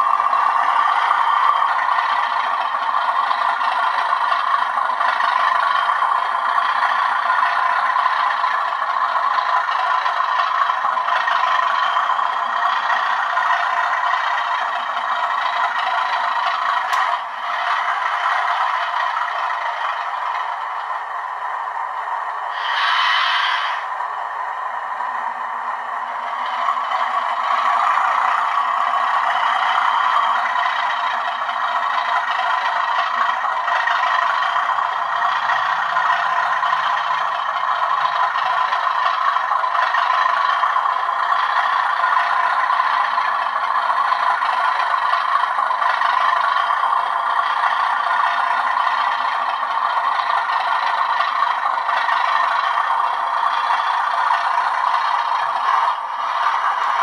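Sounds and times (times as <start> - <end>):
model train wheels rattling: 0.0 - 21.2, 25.5 - 57.0
diesel engine sound from small speaker: 0.0 - 57.0.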